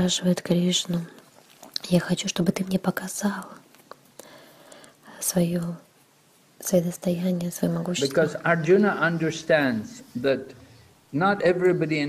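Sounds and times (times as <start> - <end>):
person speaking: 6.6 - 12.0.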